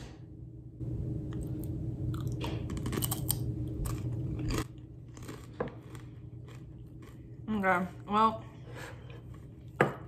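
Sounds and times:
crunching a crisp chip: 0:02.1 - 0:07.3.

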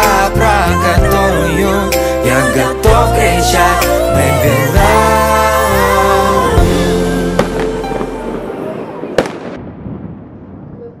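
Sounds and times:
song with held notes: 0:00.0 - 0:08.8
fireworks bangs: 0:07.3 - 0:11.0.

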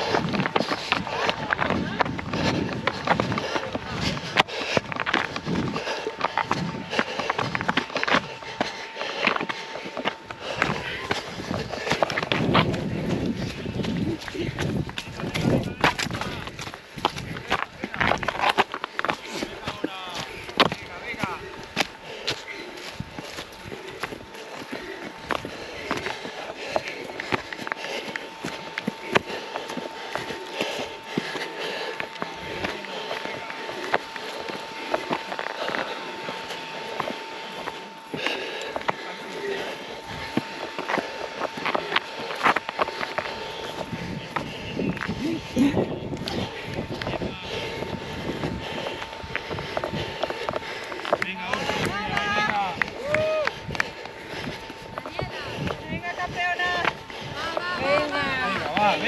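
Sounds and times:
running footsteps on stones: 0:00.0 - 0:59.0.

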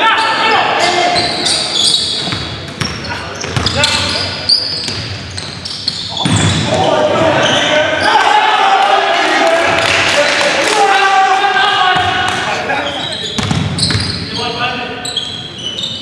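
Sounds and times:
basketball bouncing on hardwood: 0:13.4 - 0:14.1.

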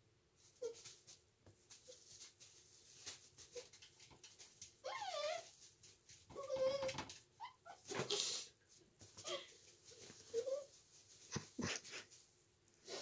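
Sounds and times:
puppy yips: 0:04.8 - 0:05.5
puppy whining: 0:04.8 - 0:05.6, 0:06.3 - 0:08.1.

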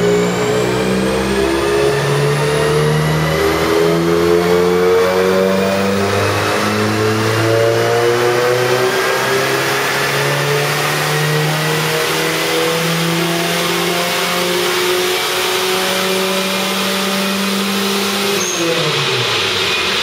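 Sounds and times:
car engine revving under load: 0:00.0 - 0:20.0.

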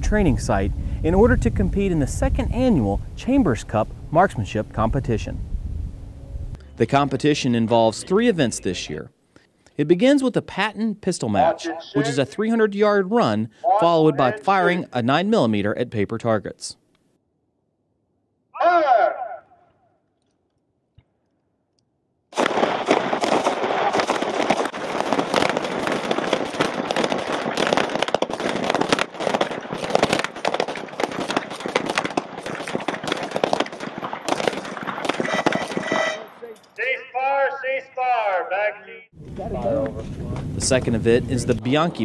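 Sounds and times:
pistols firing rapidly: 0:22.4 - 0:36.1.

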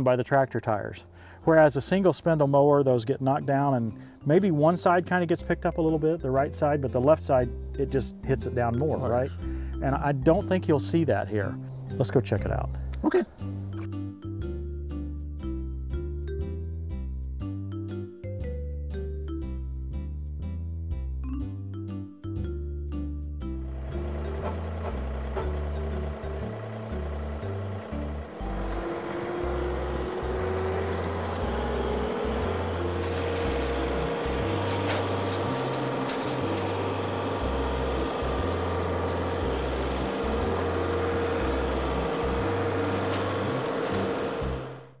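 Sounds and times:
music with stepping bass line: 0:12.8 - 0:44.9
tractor and rotary cutter running: 0:23.6 - 0:45.0.

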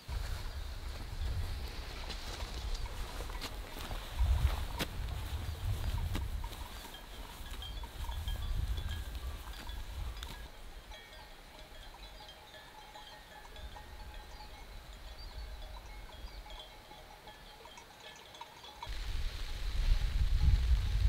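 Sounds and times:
sheep bells clinking: 0:00.4 - 0:19.0.

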